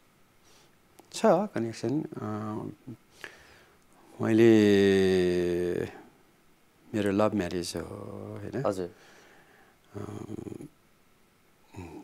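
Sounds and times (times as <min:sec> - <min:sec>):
man speaking: 0:01.1 - 0:03.0, 0:04.2 - 0:06.0, 0:06.9 - 0:09.0, 0:09.9 - 0:10.7
man's low gravelly vocal sound: 0:09.9 - 0:10.7, 0:11.7 - 0:12.0.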